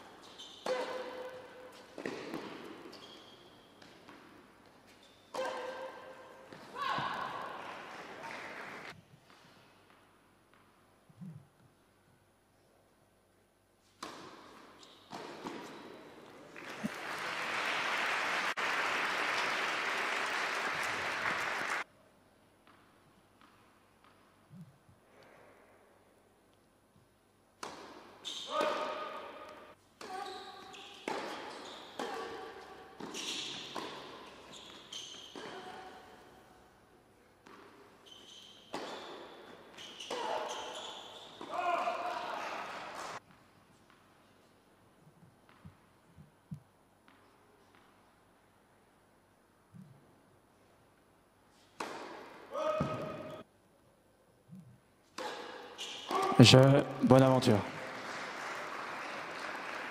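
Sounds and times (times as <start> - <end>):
spectators applauding: 16.5 - 21.8, 57.2 - 59.9
person talking: 56.2 - 57.7.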